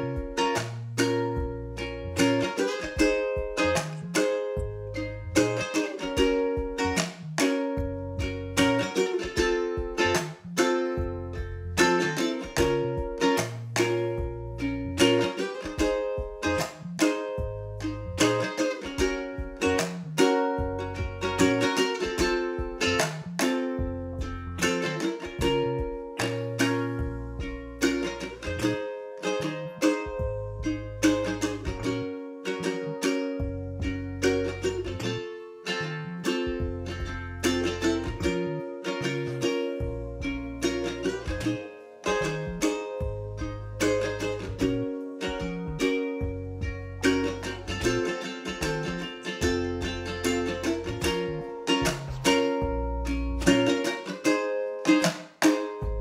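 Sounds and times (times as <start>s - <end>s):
ukulele strumming chords: 0.0s - 56.0s.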